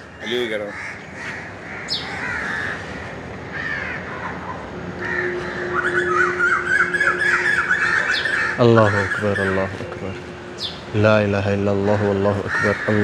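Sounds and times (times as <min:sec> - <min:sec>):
faint steady hum: 0:00.0 - 0:13.0
harsh caw-like bird calls: 0:00.0 - 0:13.0
wavering bird call: 0:03.5 - 0:13.0.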